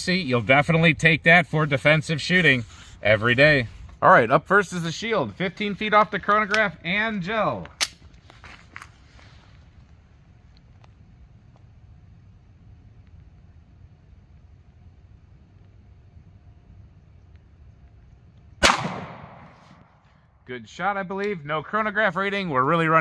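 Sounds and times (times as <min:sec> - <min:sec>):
pistol shot with echo: 0:18.6 - 0:19.9.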